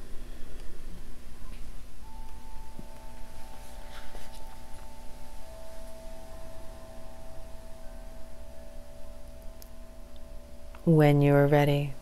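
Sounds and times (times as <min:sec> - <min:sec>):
bell-like meditation drone: 0:01.2 - 0:12.0.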